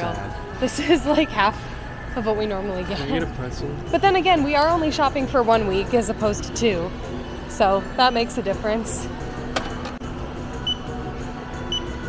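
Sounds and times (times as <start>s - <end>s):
low store background: 0.0s - 12.0s
barcode scanner beeping: 10.6s - 10.9s, 11.7s - 12.0s.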